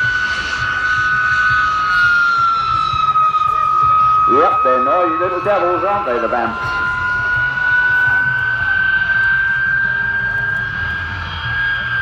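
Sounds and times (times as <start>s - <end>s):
jet flying past: 0.0s - 12.0s.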